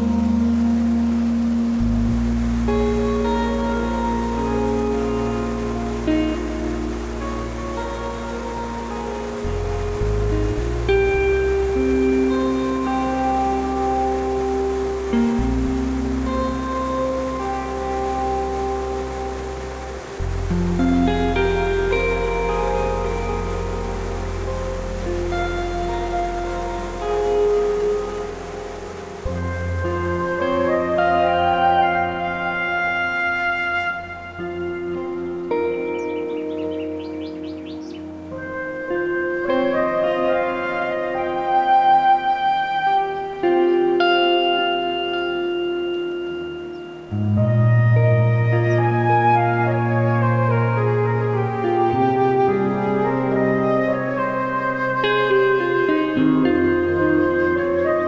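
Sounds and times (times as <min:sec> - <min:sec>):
large waterfall rushing: 0:00.0 - 0:58.0
slow music with held notes: 0:00.0 - 0:58.0
bird chirping: 0:35.8 - 0:38.2.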